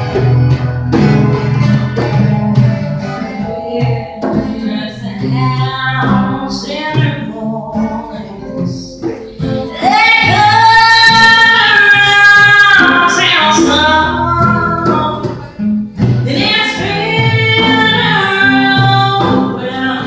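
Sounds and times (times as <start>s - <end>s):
instrumental accompaniment: 0.0s - 20.0s.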